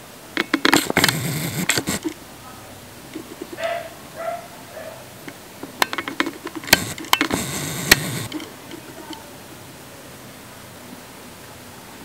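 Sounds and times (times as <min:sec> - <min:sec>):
camera handling clicks: 0:00.4 - 0:02.2, 0:05.8 - 0:08.5.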